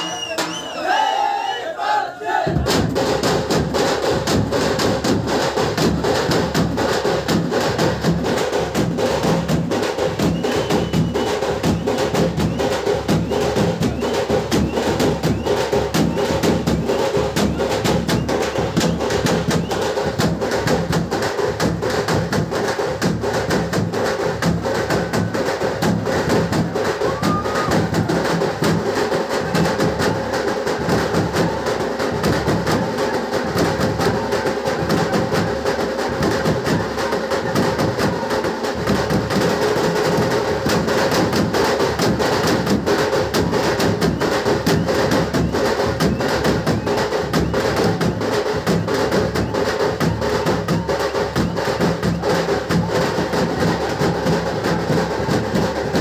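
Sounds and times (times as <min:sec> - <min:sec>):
drums beating fast rhythm: 0:02.3 - 0:56.0.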